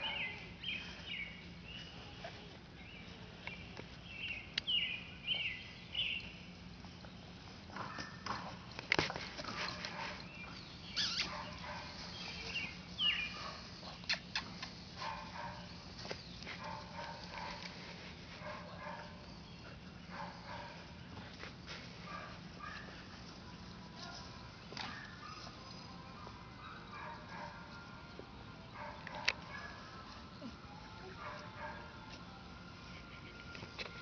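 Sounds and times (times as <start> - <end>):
puppy squeaking: 10.9 - 11.5.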